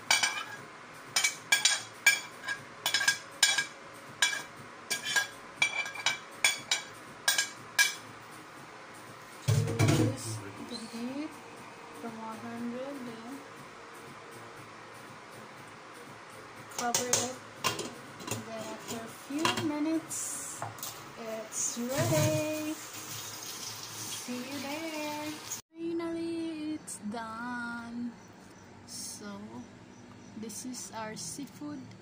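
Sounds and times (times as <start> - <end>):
metal spoon clinking on pot: 0.1 - 0.6, 1.2 - 8.0.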